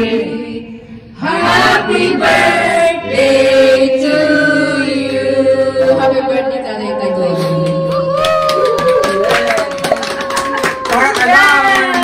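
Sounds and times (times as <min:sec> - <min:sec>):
group of people singing: 0:00.0 - 0:06.6.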